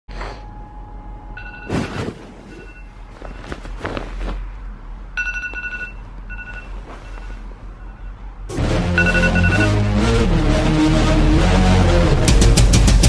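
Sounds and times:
bedding rustling: 0:01.6 - 0:07.9
smartphone alarm beeping: 0:05.2 - 0:08.2, 0:09.0 - 0:09.8.

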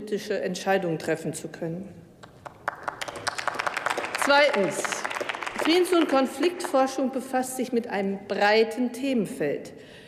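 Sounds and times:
group clapping: 0:02.2 - 0:07.1.

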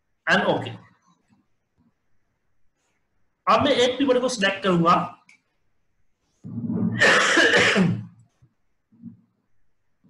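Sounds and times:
person coughing: 0:06.9 - 0:08.2.

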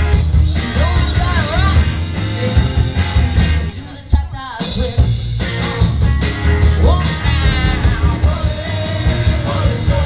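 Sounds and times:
garage rock band playing: 0:00.0 - 0:10.0.

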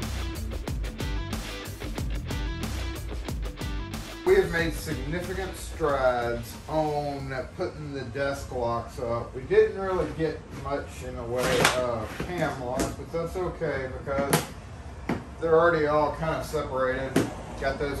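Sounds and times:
man talking: 0:04.2 - 0:14.5, 0:15.4 - 0:18.0.

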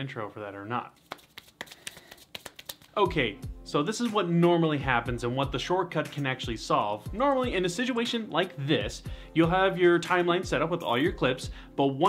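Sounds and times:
hands rubbing together: 0:00.9 - 0:03.0.

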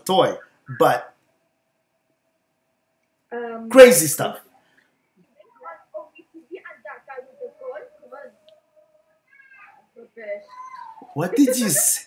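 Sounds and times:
girl speaking quietly: 0:05.4 - 0:12.0.

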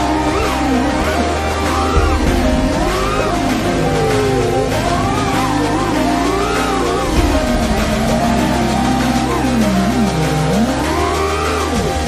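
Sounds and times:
background music: 0:00.0 - 0:12.0
drone motors whining: 0:00.0 - 0:12.0.

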